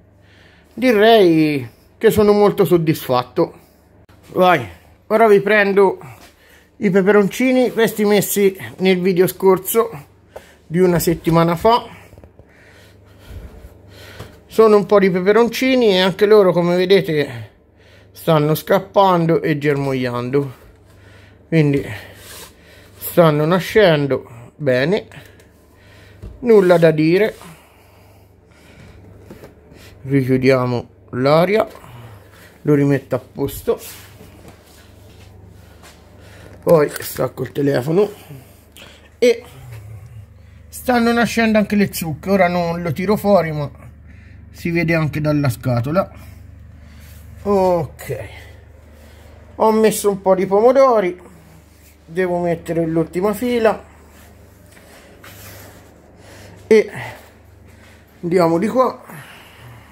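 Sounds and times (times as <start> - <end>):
faint low hum: 0.0 - 59.9.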